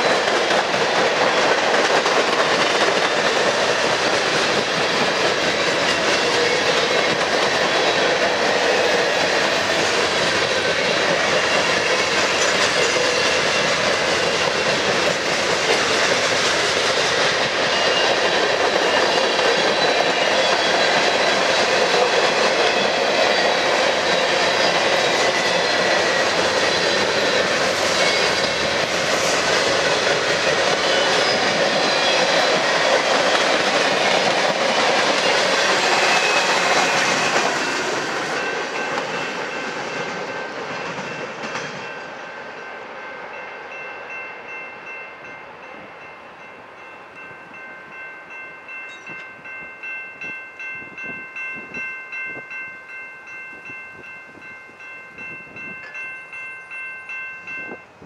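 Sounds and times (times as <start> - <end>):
freight train rolling past: 0.0 - 58.0
crossing signal bell ringing: 34.2 - 58.0.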